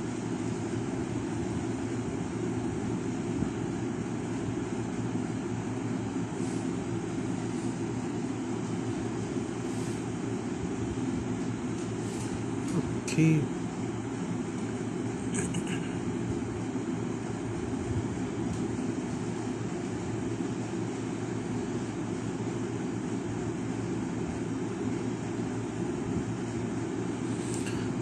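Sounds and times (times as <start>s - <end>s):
low background hum: 0.0s - 28.0s.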